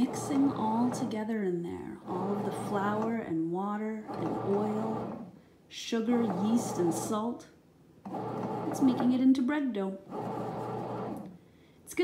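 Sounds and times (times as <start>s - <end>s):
bread machine kneading dough: 0.0s - 1.2s, 2.0s - 3.2s, 4.1s - 5.3s, 6.1s - 7.1s, 8.1s - 9.2s, 10.1s - 11.3s.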